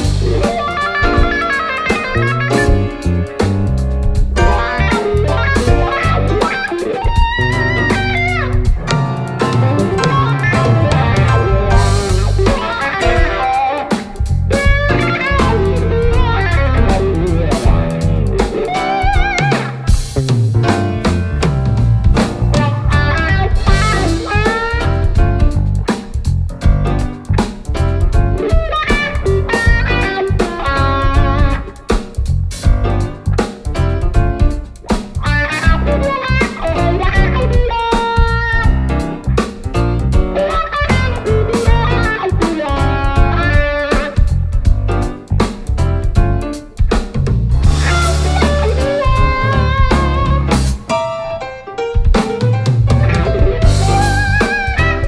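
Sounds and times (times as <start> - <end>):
electric bass: 0.0 - 50.9, 52.7 - 55.0
drum kit: 0.0 - 55.0
electric guitar melody with bent notes: 0.0 - 55.0
grand piano: 0.0 - 55.0.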